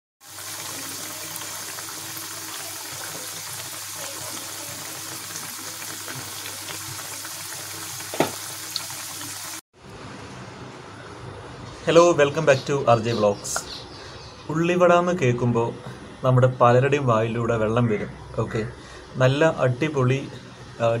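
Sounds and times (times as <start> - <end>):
oil sizzling in deep fryer: 0.2 - 9.6.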